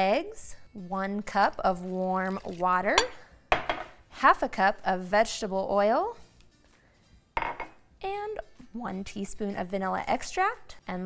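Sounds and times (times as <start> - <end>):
glass cup set down on counter: 3.5 - 4.0, 7.4 - 7.8.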